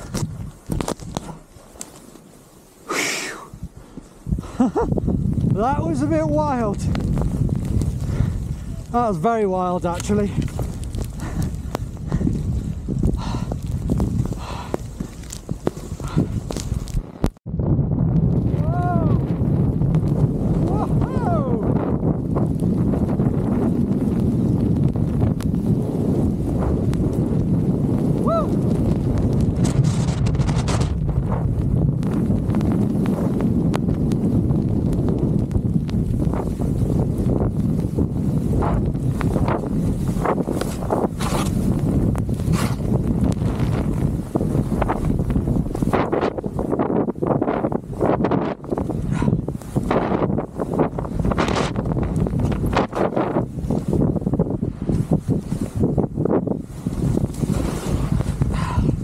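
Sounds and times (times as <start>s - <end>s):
ski turns swishing and thudding: 0.0s - 17.4s, 19.3s - 59.0s
skis running through powder snow: 0.0s - 17.4s, 19.3s - 59.0s
wind rumble on microphone: 0.0s - 59.0s.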